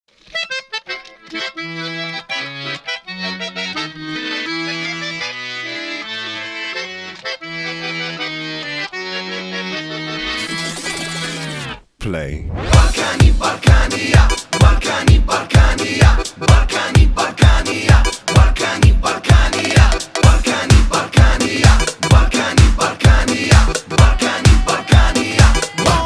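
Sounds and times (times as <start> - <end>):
accordion playing fast melody: 0.3 - 11.8, 12.8 - 26.0.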